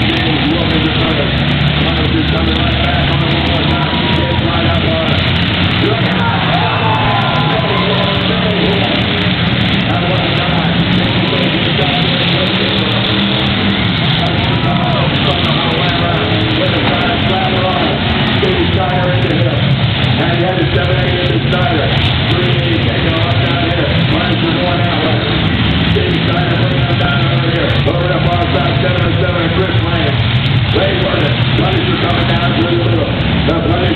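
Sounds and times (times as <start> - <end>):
car engines droning: 0.0 - 33.9.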